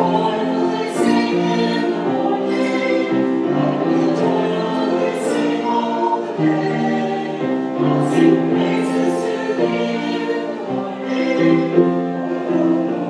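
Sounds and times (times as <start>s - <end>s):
church choir singing in harmony: 0.0s - 13.0s.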